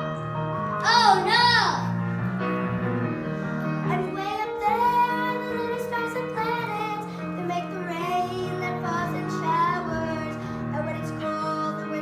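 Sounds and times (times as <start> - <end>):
instrumental accompaniment: 0.0 - 12.0
child singing: 0.8 - 1.9, 3.9 - 12.0.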